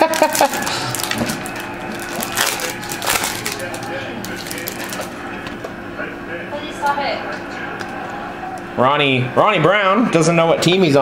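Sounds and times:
wrapper crinkling and tearing: 0.0s - 5.3s
cards rustling: 0.0s - 5.7s.

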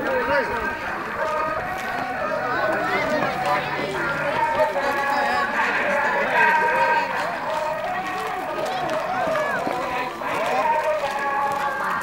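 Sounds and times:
crowd talking: 0.0s - 12.0s.

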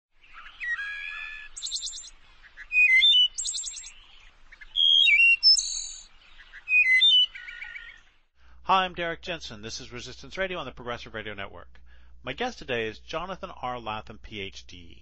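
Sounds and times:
bird singing whistles and trills: 0.2s - 8.0s.

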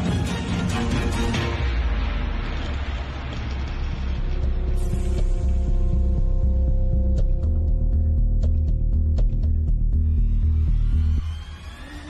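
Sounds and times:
throbbing bass pulse: 3.8s - 11.3s.

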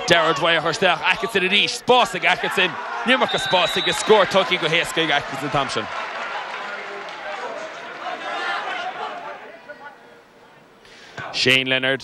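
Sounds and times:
distant crowd voices and calls: 0.0s - 11.4s.

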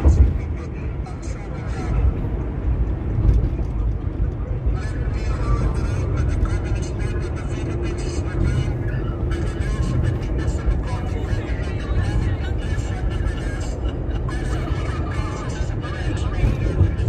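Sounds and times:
car driving rumble: 0.0s - 17.0s.

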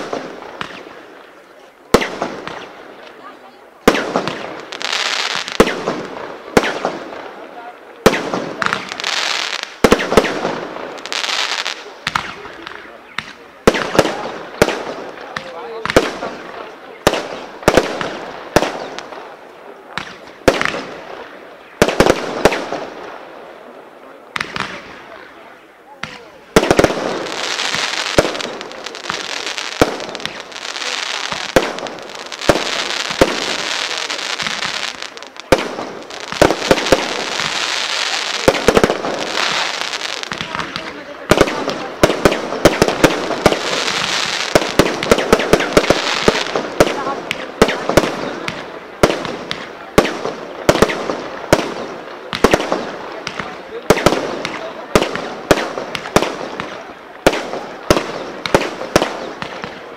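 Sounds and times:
fireworks shots: 0.0s - 59.9s
crackling hiss of bursting stars: 26.5s - 59.9s.

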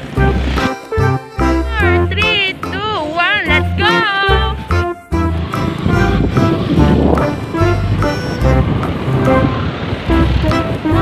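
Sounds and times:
held melodic notes: 0.0s - 11.0s
low bass line: 0.0s - 11.0s.

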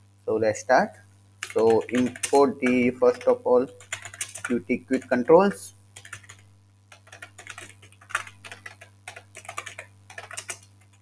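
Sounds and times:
steady low hum: 0.0s - 11.0s
computer keyboard typing: 1.4s - 5.3s, 6.0s - 11.0s.

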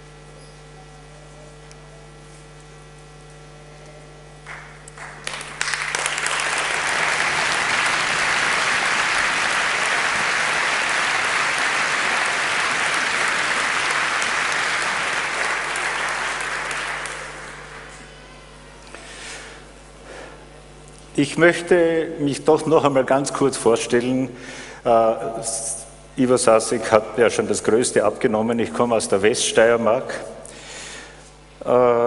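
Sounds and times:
crowd applauding: 4.4s - 18.6s.

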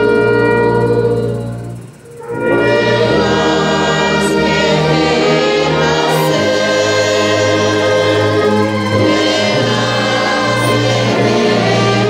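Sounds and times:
brass orchestra playing: 0.0s - 12.0s
congregation singing a hymn: 0.0s - 12.0s.

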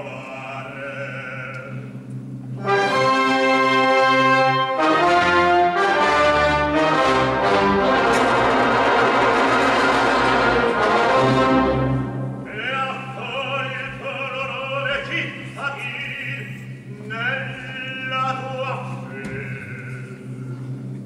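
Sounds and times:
orchestra playing loud chords: 2.6s - 13.2s.

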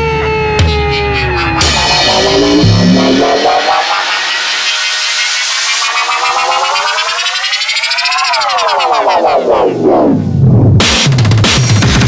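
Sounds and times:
buzzy synthesizer tone gliding: 0.0s - 10.4s.

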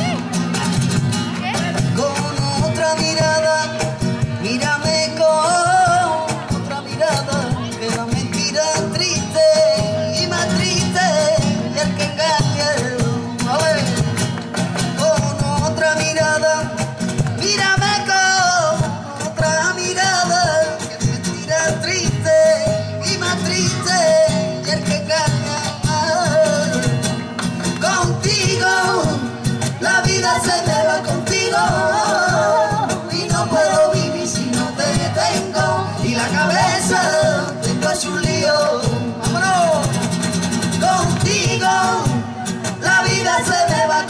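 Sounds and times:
acoustic guitar strumming: 0.0s - 44.0s
backing voices: 0.0s - 44.0s
percussion: 0.0s - 44.0s
person singing: 27.8s - 40.0s, 40.7s - 44.0s.

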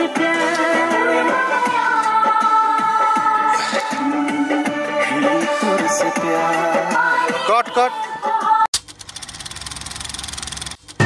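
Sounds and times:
film projector ticking whir: 8.8s - 11.0s.

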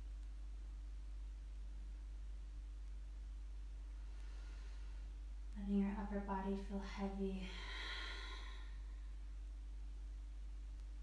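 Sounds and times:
steady low hum: 0.0s - 11.0s
woman sighing: 7.5s - 8.8s.

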